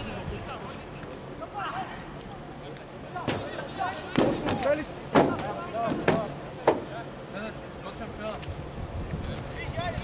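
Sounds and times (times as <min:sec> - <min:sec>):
sharp knocks: 0:04.2 - 0:06.9.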